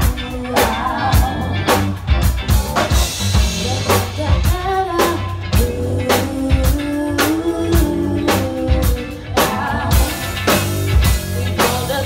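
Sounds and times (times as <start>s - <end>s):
bass guitar: 0.0s - 12.0s
drum kit beat: 0.0s - 12.0s
electric and acoustic guitars: 0.0s - 12.0s.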